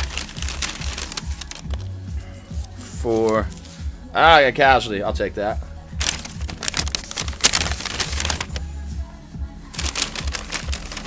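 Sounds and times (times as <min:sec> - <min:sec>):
paper and foil wrappers rustling: 0:00.0 - 0:03.8, 0:06.0 - 0:08.7, 0:09.7 - 0:11.0.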